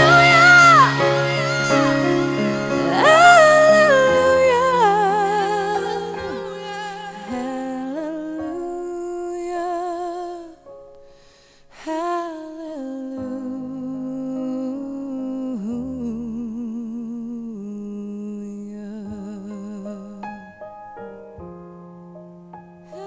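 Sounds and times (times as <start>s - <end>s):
woman singing with vibrato: 0.0s - 10.6s
soft piano chords: 0.0s - 23.0s.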